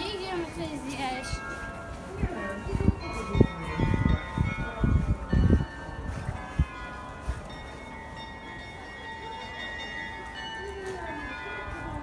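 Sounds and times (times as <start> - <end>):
carillon bells ringing a melody: 0.0 - 12.0.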